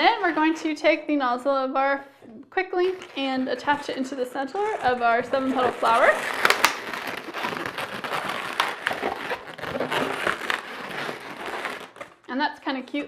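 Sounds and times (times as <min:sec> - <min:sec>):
balloons rubbing and squeaking: 0:00.0 - 0:00.7, 0:02.7 - 0:12.3.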